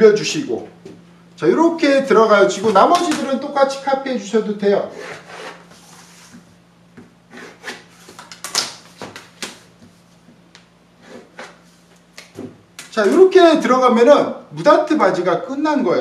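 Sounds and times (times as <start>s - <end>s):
pencil and ruler scraping paper: 4.9s - 6.3s.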